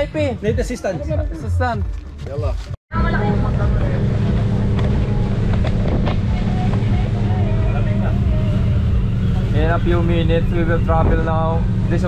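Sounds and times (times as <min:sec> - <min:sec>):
motorboat engine rumbling: 0:02.9 - 0:12.0.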